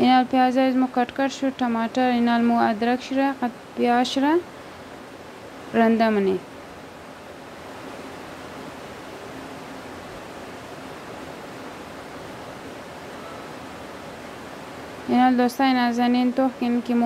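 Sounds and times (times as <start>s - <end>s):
steady background hiss: 0.0s - 17.0s.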